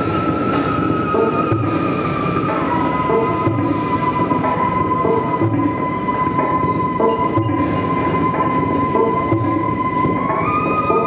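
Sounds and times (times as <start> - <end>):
high whistling tone: 0.0 - 11.0.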